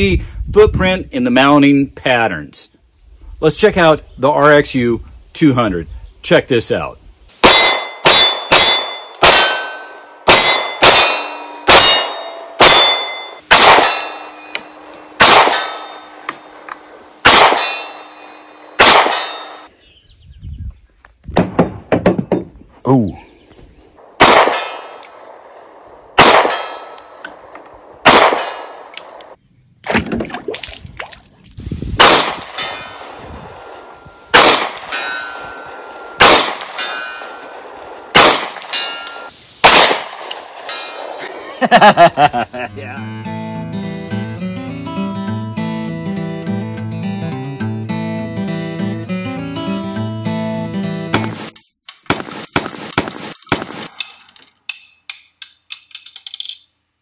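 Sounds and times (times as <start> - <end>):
pistol shots with ringing tail: 7.4 - 19.7, 24.1 - 29.3, 32.0 - 41.3, 51.1 - 54.3.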